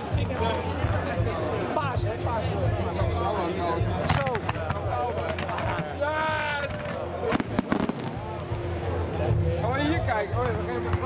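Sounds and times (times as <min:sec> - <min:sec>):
spectators talking: 0:00.0 - 0:11.0
fireworks bangs and cracks: 0:04.0 - 0:08.8.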